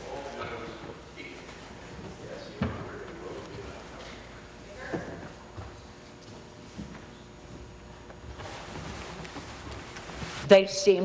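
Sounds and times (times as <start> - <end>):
low chamber background noise: 0.0 - 11.0.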